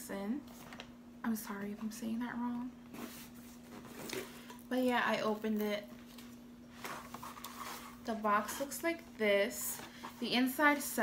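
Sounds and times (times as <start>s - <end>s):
cardboard rustling and scraping: 2.9s - 4.4s, 6.0s - 8.2s.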